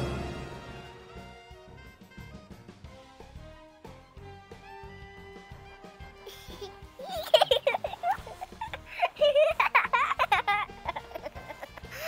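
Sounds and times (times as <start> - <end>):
background music: 0.0 - 12.0
high-pitched cartoon giggling: 6.3 - 12.0.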